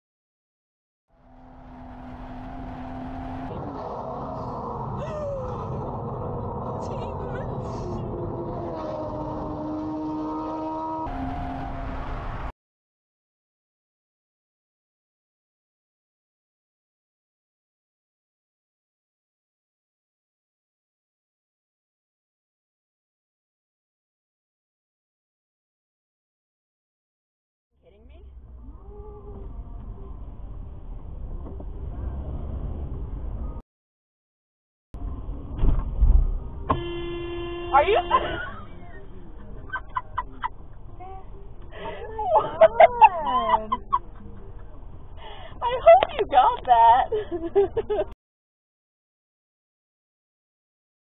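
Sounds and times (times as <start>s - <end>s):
car engine inside cabin: 1.1s - 12.5s, 27.8s - 33.6s, 35.0s - 47.0s
road noise: 1.1s - 12.5s, 27.8s - 33.6s, 35.0s - 48.1s.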